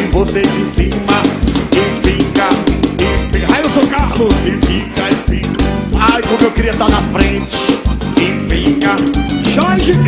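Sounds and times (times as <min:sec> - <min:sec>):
accordion: 0:00.0 - 0:10.0
bass: 0:00.0 - 0:10.0
drum kit: 0:00.0 - 0:10.0
electric guitar: 0:00.0 - 0:10.0
keyboard: 0:00.0 - 0:10.0.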